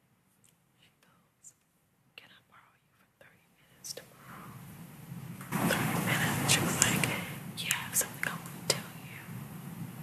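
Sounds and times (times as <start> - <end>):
person whispering: 0.8 - 1.6, 2.2 - 4.3, 5.6 - 9.3.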